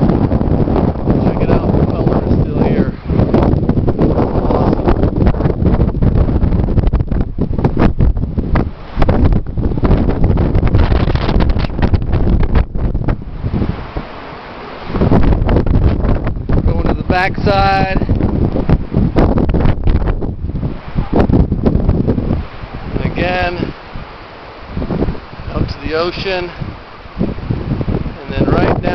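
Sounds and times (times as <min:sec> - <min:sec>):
wind buffeting microphone: 0:00.0 - 0:28.9.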